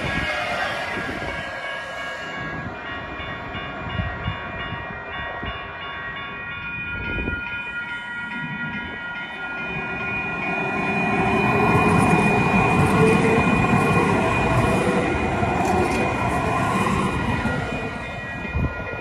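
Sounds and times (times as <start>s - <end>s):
electric train whine: 0.0s - 19.0s.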